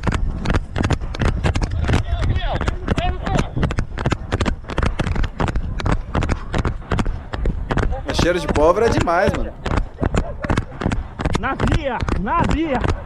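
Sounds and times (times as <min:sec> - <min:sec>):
running footfalls on dirt: 0:00.0 - 0:13.0.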